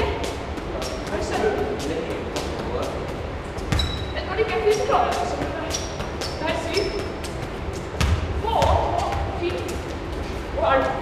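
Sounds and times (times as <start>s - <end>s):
ball bouncing on concrete: 3.6s - 9.8s
foot kicking soccer ball: 4.9s - 10.2s.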